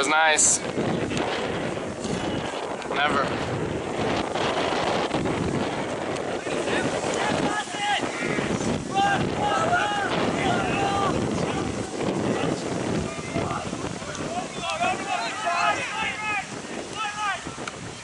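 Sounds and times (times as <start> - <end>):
wind buffeting microphone: 0.0 - 18.0
players shouting: 5.6 - 18.0.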